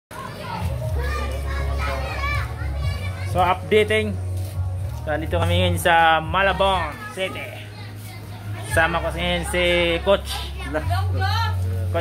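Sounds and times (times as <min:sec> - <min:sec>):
children playing and calling out: 0:00.1 - 0:04.5, 0:06.3 - 0:11.6.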